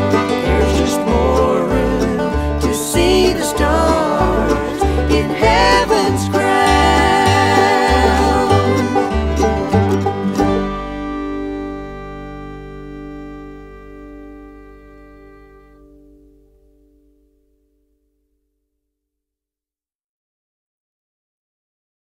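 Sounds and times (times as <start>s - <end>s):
bluegrass band playing: 0.0s - 16.3s.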